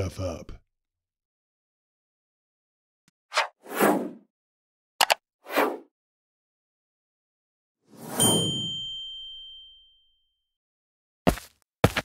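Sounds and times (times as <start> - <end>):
bright bell-like ding: 8.2 - 10.2.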